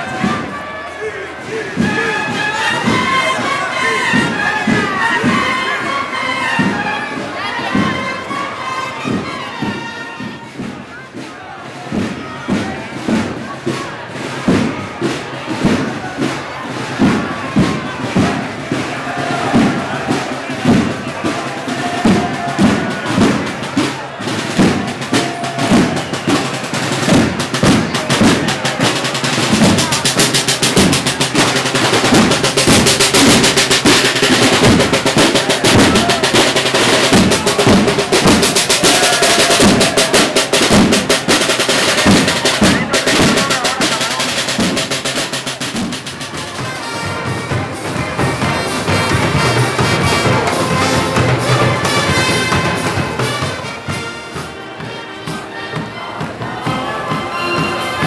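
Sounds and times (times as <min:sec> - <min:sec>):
snare drums: 0:00.0 - 0:58.0
bass drum: 0:16.8 - 0:54.1.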